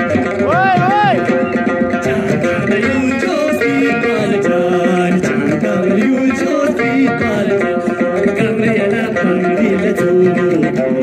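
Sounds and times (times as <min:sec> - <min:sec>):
plucked lutes: 0:00.0 - 0:11.0
voices singing in unison: 0:02.0 - 0:11.0.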